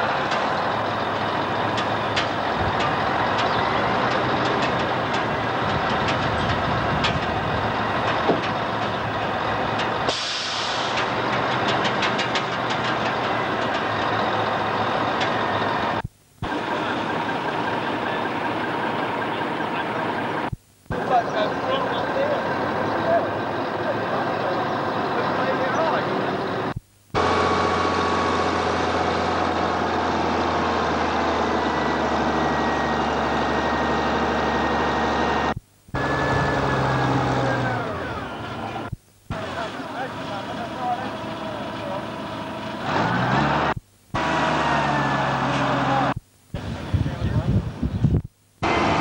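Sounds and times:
heavy diesel machinery running: 0:00.0 - 0:49.0.

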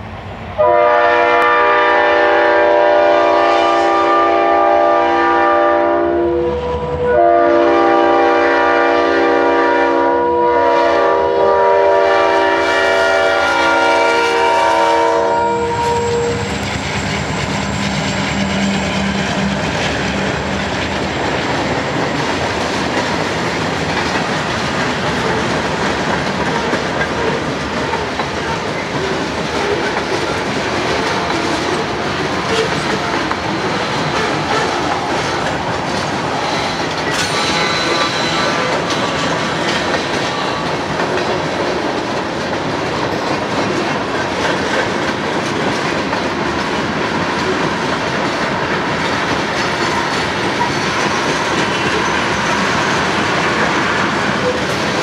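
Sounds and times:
locomotive air horn blasts: 0:00.6 - 0:16.6
locomotive engine passing: 0:13.6 - 0:45.2, 0:46.0 - 0:55.0
train wheels clacking on rail joints: 0:15.4 - 0:55.0.

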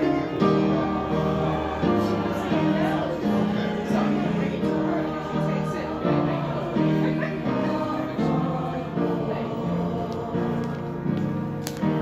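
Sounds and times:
choir singing a slow hymn: 0:00.0 - 0:12.0.

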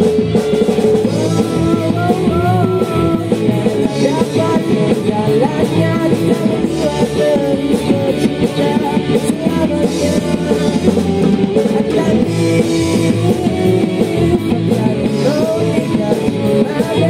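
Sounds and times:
drum kit: 0:00.0 - 0:17.0
electric guitars: 0:00.0 - 0:17.0.

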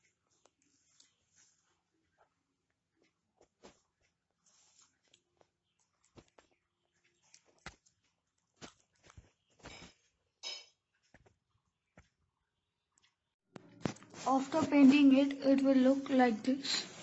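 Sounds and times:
paper rustling: 0:06.0 - 0:10.0.

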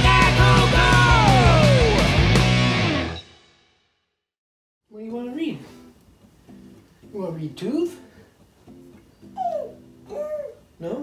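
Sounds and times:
baby whining: 0:09.3 - 0:10.7.

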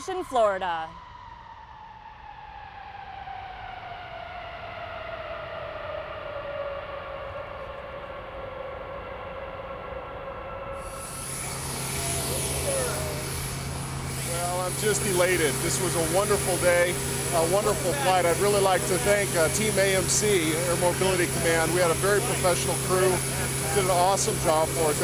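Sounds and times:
jet engines whining down: 0:00.0 - 0:25.0
engine hiss with low hum: 0:02.2 - 0:25.0.

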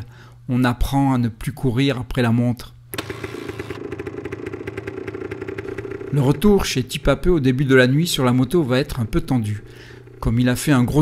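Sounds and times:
small motorcycle engine running: 0:03.0 - 0:11.0.

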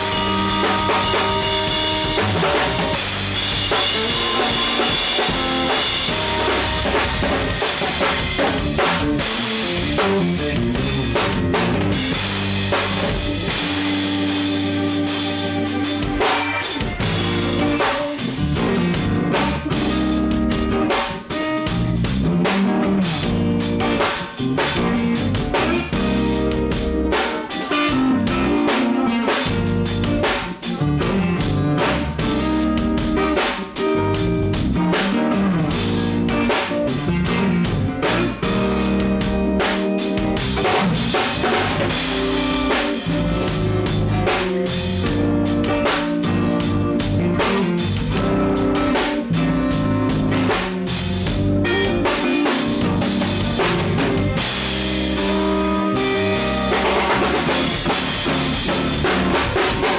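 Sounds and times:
drum kit groove: 0:00.0 - 0:59.9.

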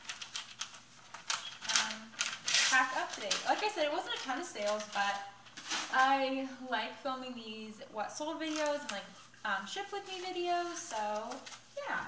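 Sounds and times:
paper rustling and crinkling: 0:00.0 - 0:06.3, 0:08.4 - 0:12.0.

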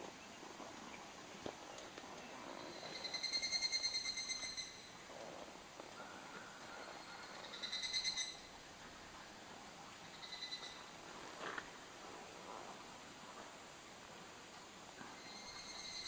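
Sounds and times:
faint background hiss: 0:00.0 - 0:16.0.

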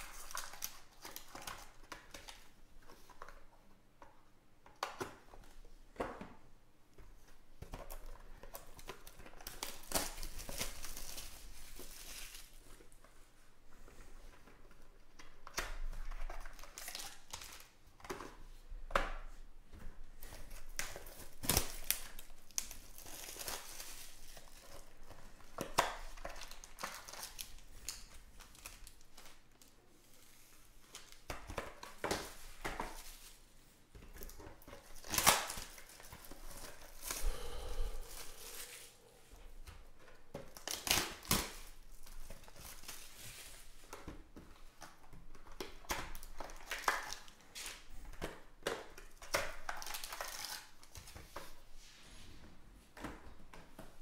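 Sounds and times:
plastic wrap tearing and crinkling: 0:00.0 - 0:02.5, 0:07.9 - 0:12.8, 0:15.4 - 0:17.8, 0:20.2 - 0:33.5, 0:34.1 - 0:37.2, 0:40.0 - 0:44.1, 0:44.8 - 0:51.6.

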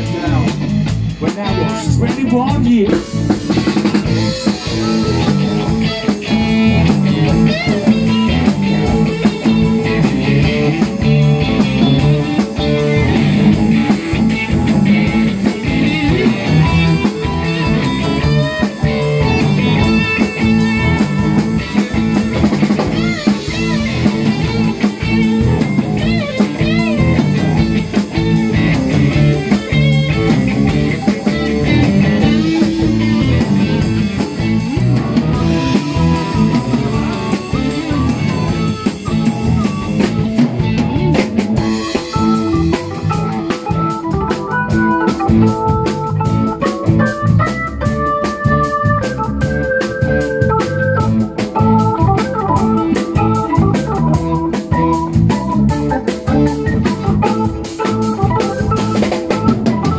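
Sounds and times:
blues-rock band playing: 0:00.0 - 0:59.9
electric guitar lead line: 0:00.0 - 0:59.9.

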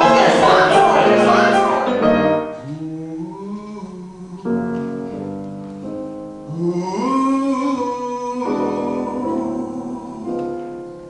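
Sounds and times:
man singing a held note: 0:00.0 - 0:05.2, 0:06.5 - 0:10.7
piano accompaniment: 0:00.0 - 0:11.0.

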